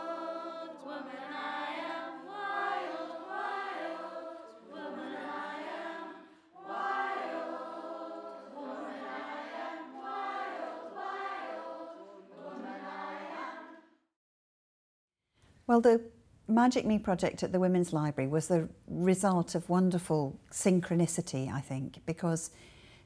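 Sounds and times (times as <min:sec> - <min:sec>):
female choir singing: 0:00.0 - 0:14.0.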